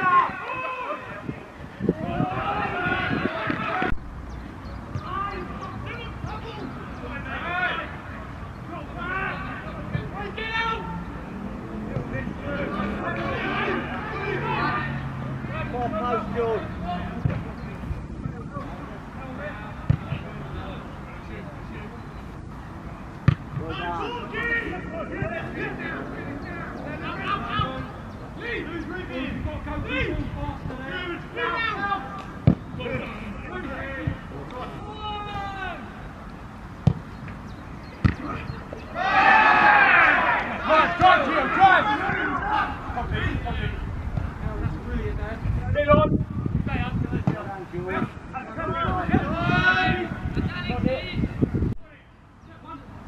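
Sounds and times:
players shouting: 0:00.0 - 0:04.0, 0:04.9 - 0:17.9, 0:23.3 - 0:36.2, 0:38.0 - 0:45.0, 0:46.8 - 0:50.9
men shouting: 0:01.9 - 0:03.9, 0:08.7 - 0:11.4, 0:12.2 - 0:17.2, 0:30.8 - 0:32.2, 0:34.6 - 0:36.0, 0:38.2 - 0:43.8
football being kicked: 0:19.8 - 0:20.2, 0:38.0 - 0:38.4.

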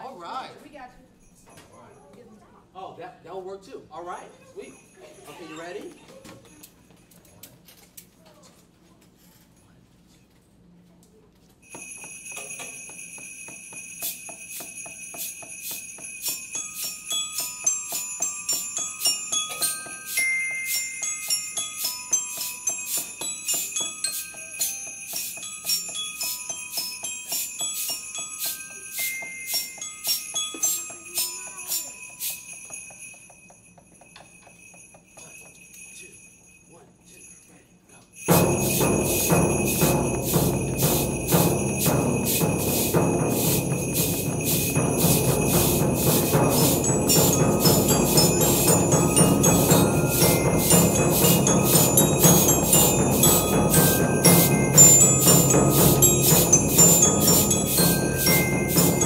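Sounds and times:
sleigh bells shaken: 0:04.0 - 0:07.8, 0:11.6 - 0:59.0
percussion ensemble playing: 0:11.6 - 0:36.6, 0:38.2 - 0:59.0
glockenspiel melody: 0:11.6 - 0:37.6, 0:38.2 - 0:59.0
bass drum: 0:38.3 - 0:59.0.

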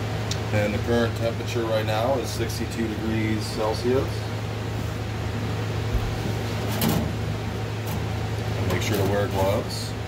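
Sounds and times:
ultrasonic cleaner humming: 0:00.0 - 0:10.0.

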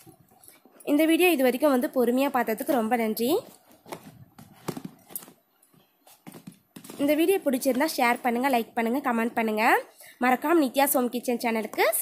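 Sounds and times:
sneakers knocking and rustling: 0:03.5 - 0:07.9.

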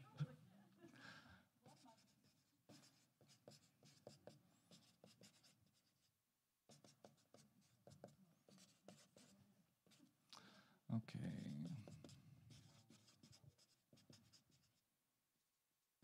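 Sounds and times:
marker scratching on paper: 0:01.6 - 0:06.1, 0:06.7 - 0:10.1, 0:11.4 - 0:14.8.

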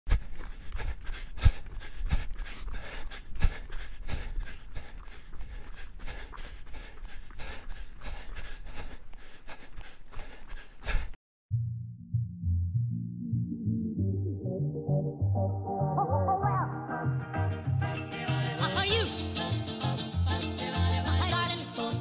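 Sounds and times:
running footsteps on dirt: 0:00.1 - 0:11.2
low music: 0:11.5 - 0:17.9.

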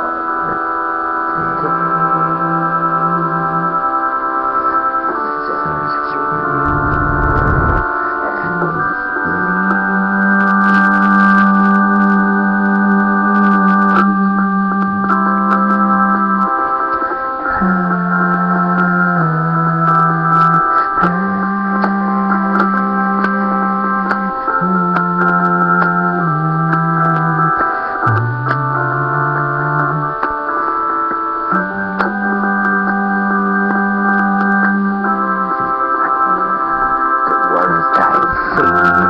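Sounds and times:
sustained keyboard chords: 0:00.0 - 0:39.0
bass line: 0:05.2 - 0:39.0.

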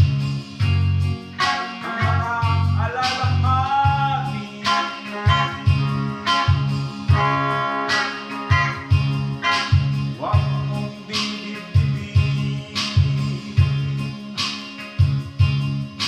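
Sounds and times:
bass line: 0:00.0 - 0:16.0
electric guitar rock song: 0:00.0 - 0:16.0.

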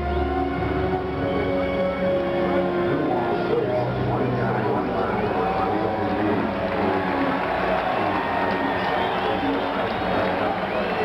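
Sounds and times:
stadium crowd noise: 0:00.0 - 0:11.0
voice over public-address system: 0:02.9 - 0:07.3.

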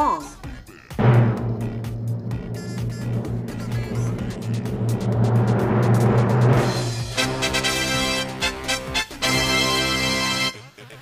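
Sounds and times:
rushing noise: 0:01.0 - 0:07.2.

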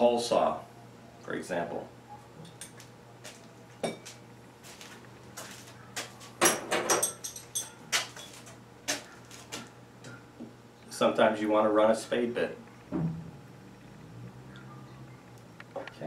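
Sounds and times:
metal tools clinking: 0:06.4 - 0:08.6.

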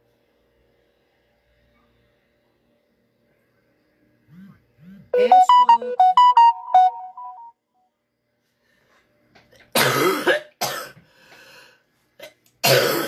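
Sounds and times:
electronic ringtone jingle: 0:05.2 - 0:07.5.

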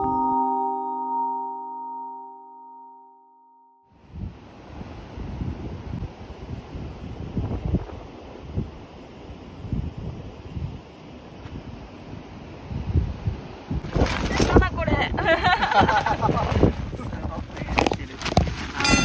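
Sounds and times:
wind gusting on microphone: 0:04.0 - 0:19.0
surf breaking on beach: 0:13.7 - 0:19.0.

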